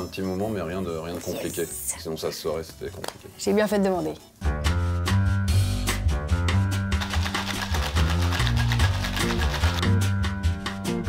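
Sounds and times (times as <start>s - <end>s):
background music: 0.0s - 11.0s
ice rattling in cocktail shaker: 7.0s - 9.9s.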